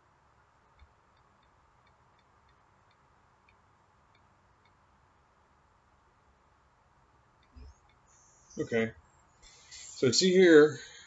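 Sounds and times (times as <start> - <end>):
faint small clicks: 0.6 - 4.8.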